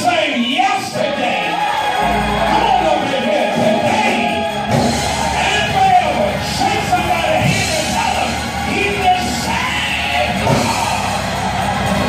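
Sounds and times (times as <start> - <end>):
live gospel music with singing: 0.0 - 12.0.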